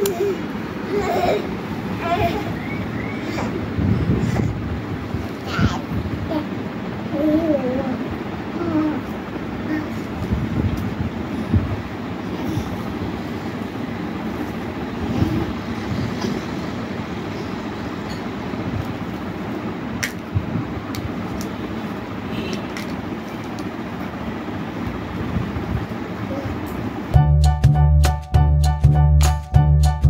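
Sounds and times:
low background rumble: 0.0s - 29.7s.

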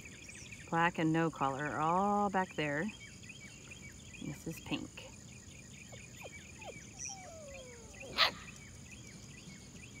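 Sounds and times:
insects buzzing and chirping: 0.0s - 10.0s.

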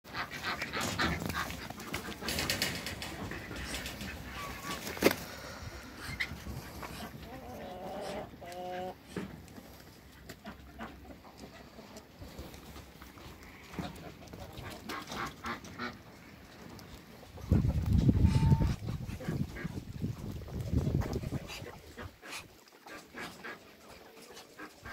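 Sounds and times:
knocks and rustles: 0.4s - 5.2s.

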